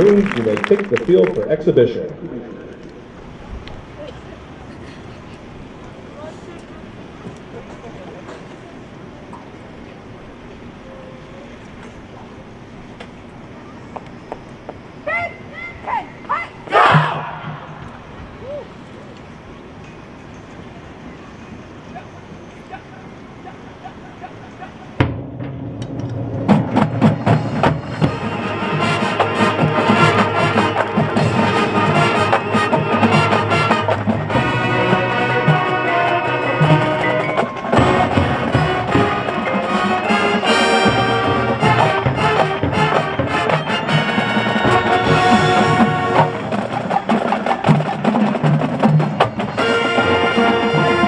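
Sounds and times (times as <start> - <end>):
low background noise: 0.0 - 51.0
drumline: 13.2 - 19.0, 23.4 - 51.0
marching band playing: 15.0 - 19.8, 24.7 - 51.0
brass chords: 25.0 - 47.0, 49.4 - 51.0.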